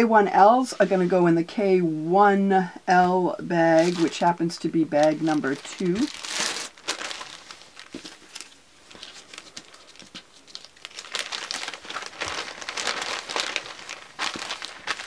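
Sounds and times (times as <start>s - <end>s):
plastic bag crinkling: 3.7s - 15.0s.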